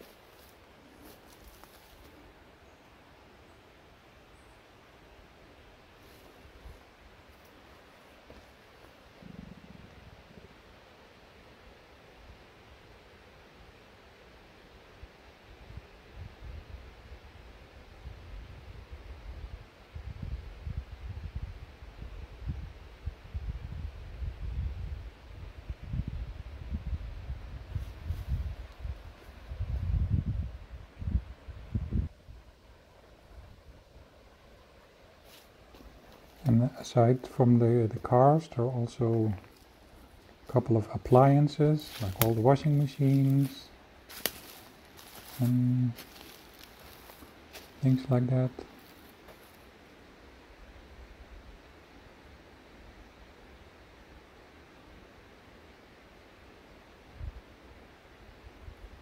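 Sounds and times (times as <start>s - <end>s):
quiet outdoor ambience: 0.0s - 59.0s
wind buffeting microphone: 18.1s - 32.4s.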